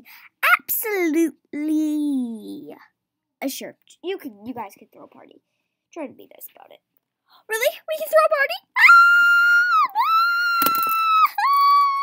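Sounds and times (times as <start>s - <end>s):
child squealing excitedly: 8.7s - 12.0s.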